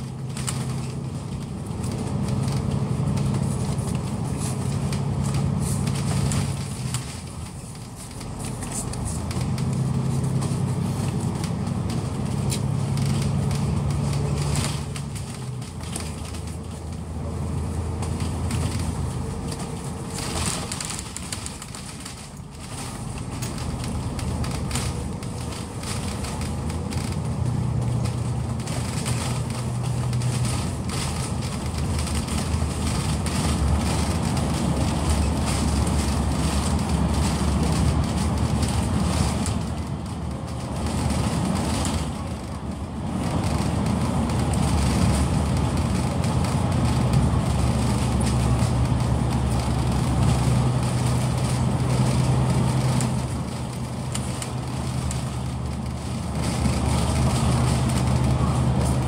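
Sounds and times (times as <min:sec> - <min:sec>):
bus engine hum: 0:00.0 - 0:59.0
road noise inside bus: 0:00.0 - 0:59.0.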